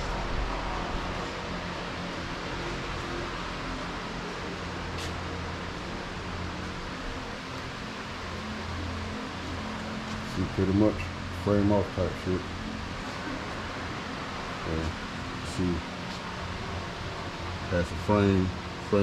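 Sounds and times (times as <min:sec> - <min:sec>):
fan running: 0:00.0 - 0:19.0
low hum and hiss: 0:00.0 - 0:19.0.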